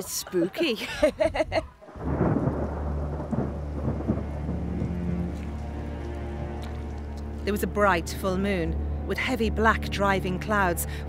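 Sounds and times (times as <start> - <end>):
woman laughing: 0.0 - 1.8
thunder rumble: 1.3 - 7.8
rain falling: 1.8 - 9.0.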